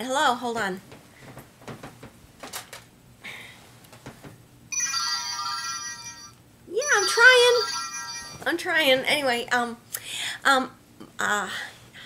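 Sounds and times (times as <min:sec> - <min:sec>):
electronic ringtone chord: 0:04.8 - 0:08.5.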